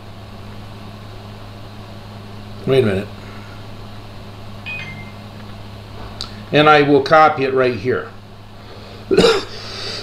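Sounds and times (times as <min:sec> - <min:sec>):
low hum: 0:03.2 - 0:06.5.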